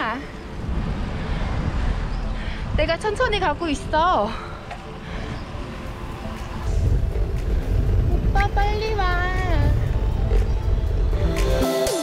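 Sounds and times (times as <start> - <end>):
faint music: 0.0 - 11.6
wind rumbling on microphone: 0.0 - 11.6.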